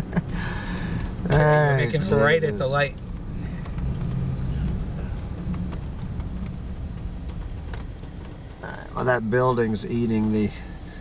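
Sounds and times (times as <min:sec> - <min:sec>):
car engine and tyre noise: 0:00.0 - 0:11.0.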